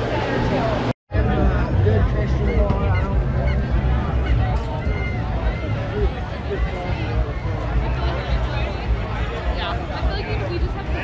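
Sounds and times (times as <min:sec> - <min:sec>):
crowd babble: 0:00.0 - 0:11.0
short high honk-like calls: 0:02.5 - 0:05.8.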